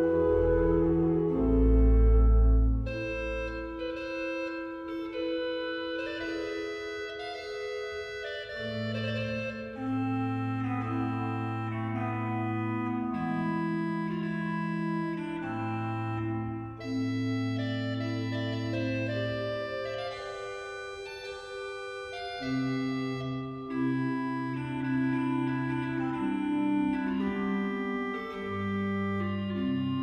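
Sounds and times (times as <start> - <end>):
low organ bass notes: 0.0 - 4.2
organ playing slow chords: 0.0 - 30.0.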